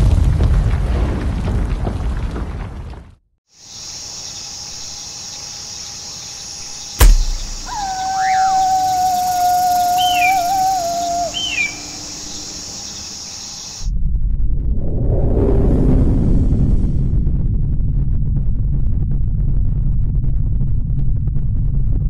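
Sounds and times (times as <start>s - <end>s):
loud hit: 7.0s - 7.9s
short high falling cries: 7.0s - 12.5s
wolf howl: 7.0s - 12.8s
high chirring background: 7.0s - 13.8s.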